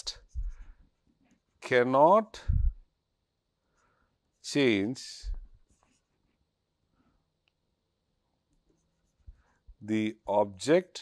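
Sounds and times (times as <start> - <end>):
man speaking: 1.6 - 2.7, 4.4 - 5.4, 9.8 - 11.0.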